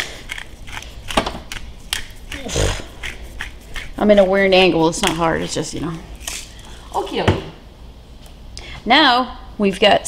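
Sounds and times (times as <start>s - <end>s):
breathy puff: 2.4s - 3.0s.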